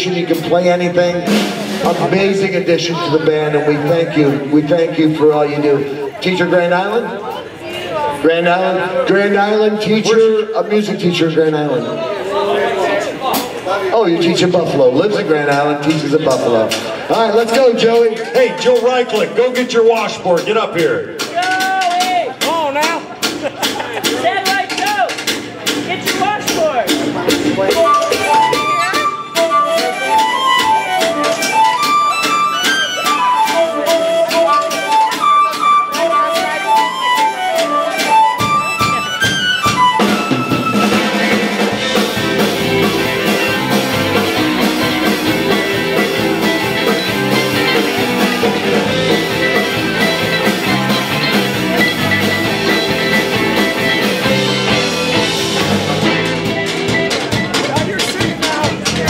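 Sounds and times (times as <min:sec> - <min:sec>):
folk band playing: 0:00.0 - 0:59.0
quick solo melody: 0:25.9 - 0:59.0.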